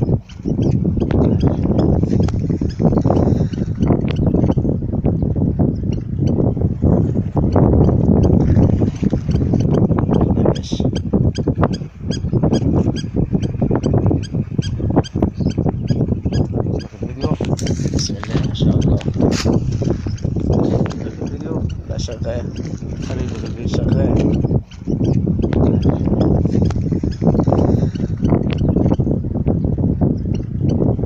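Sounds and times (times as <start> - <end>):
wind rumbling on microphone: 0.0 - 31.0.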